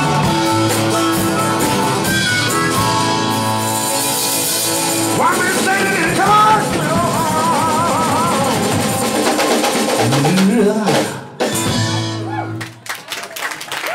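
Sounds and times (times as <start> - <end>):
man singing with vibrato: 0.0 - 3.7, 4.7 - 11.8
live blues-rock band: 0.0 - 12.8.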